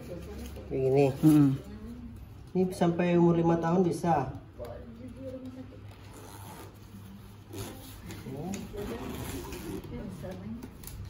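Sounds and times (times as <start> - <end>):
fabric rubbing on frame: 5.2 - 10.6
zipper being drawn: 6.0 - 10.0.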